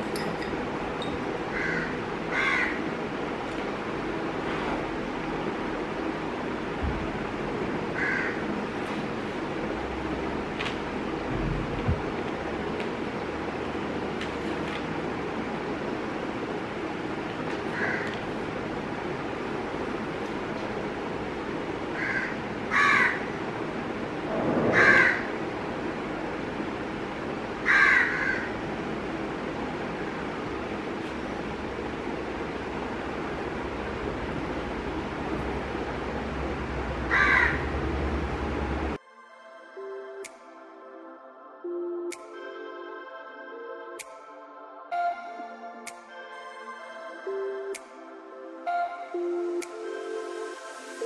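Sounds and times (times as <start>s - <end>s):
steady background hiss: 0.0s - 39.0s, 39.7s - 51.0s
crow cawing: 1.5s - 2.8s, 8.0s - 8.4s, 17.7s - 18.1s, 22.0s - 23.3s, 24.7s - 25.3s, 27.6s - 28.5s, 37.1s - 37.7s.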